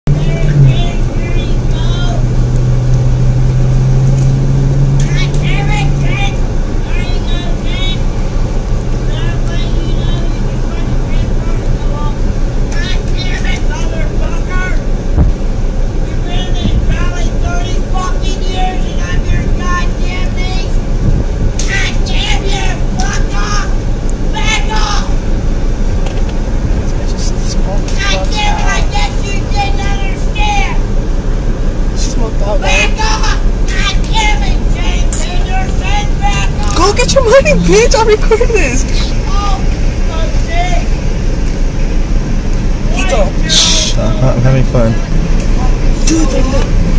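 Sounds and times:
car engine humming: 0:00.0 - 0:46.9.

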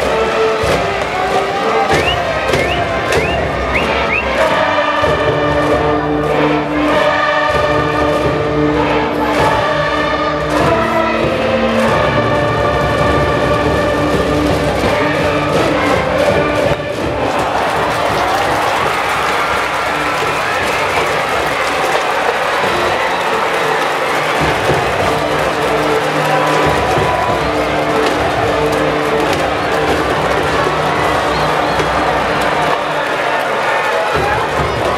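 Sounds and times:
brass band playing: 0:00.0 - 0:34.9
crowd singing and cheering: 0:00.0 - 0:34.9
drum beat: 0:00.0 - 0:34.9.

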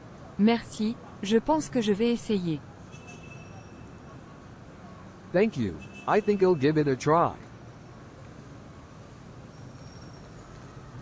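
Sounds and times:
distant road traffic: 0:00.0 - 0:11.0.

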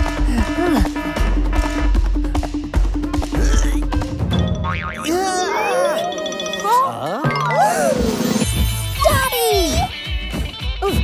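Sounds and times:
background music: 0:00.0 - 0:11.0
cartoon boing sound effect: 0:04.6 - 0:07.7.

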